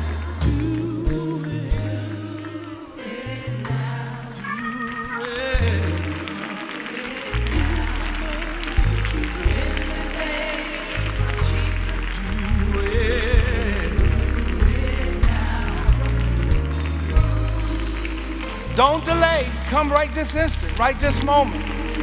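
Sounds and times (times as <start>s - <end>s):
drums with steady beat: 0.0s - 3.9s
bass line: 0.0s - 6.4s, 7.3s - 22.0s
gospel voices singing: 0.0s - 22.0s.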